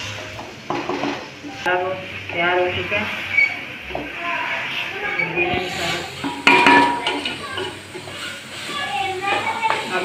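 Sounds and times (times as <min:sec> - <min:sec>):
loud ringing clank on pot: 0:06.2 - 0:07.4.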